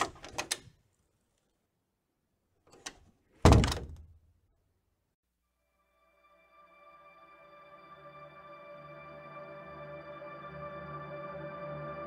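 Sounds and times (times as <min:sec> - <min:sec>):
heavy door thud: 0:03.4 - 0:04.1.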